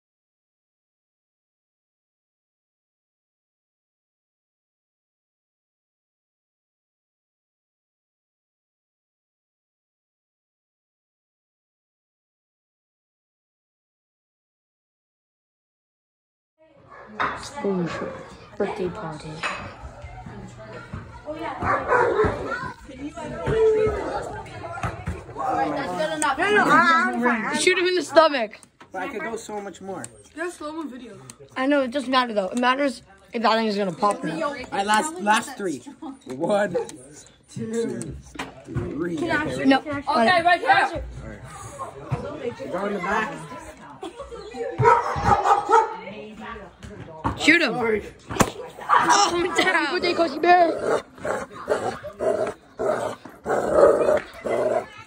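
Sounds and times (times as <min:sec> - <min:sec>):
people's voices: 0:17.0 - 0:55.0
dog barking: 0:21.6 - 0:22.5, 0:44.8 - 0:46.0
children calling out: 0:50.2 - 0:55.0.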